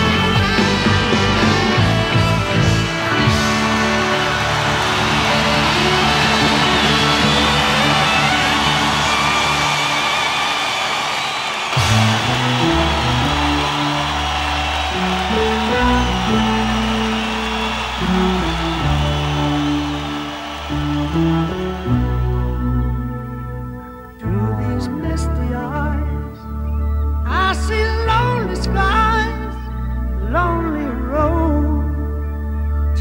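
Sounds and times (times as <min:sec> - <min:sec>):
rock music with electric guitar: 0:00.0 - 0:33.0.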